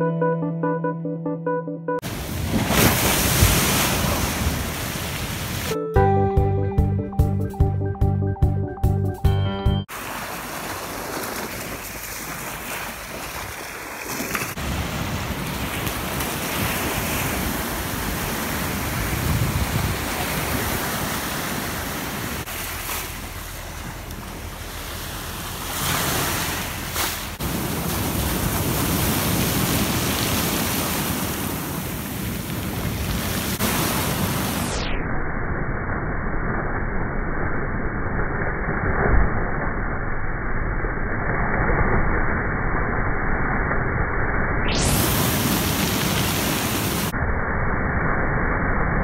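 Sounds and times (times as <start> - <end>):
waves washing over pebble beach: 9.9 - 34.6, 44.9 - 47.1
wind on microphone: 14.3 - 34.8.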